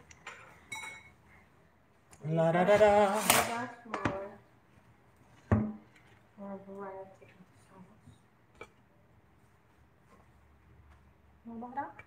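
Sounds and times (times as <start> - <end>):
man singing and humming: 2.2 - 3.2.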